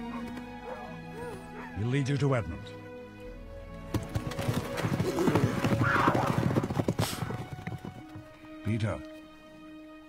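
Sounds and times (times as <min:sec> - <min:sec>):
film music: 0:00.0 - 0:10.0
horses galloping hoofbeats: 0:03.6 - 0:08.6
horse whinny: 0:04.9 - 0:07.6.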